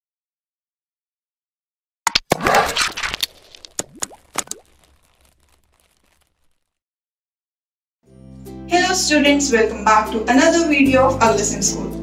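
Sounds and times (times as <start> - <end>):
rising pop: 2.1 - 6.6.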